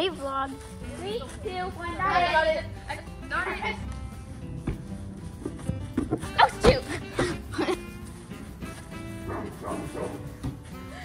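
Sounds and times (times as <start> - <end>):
background music: 0.0 - 11.0
small dog barking: 9.3 - 10.2.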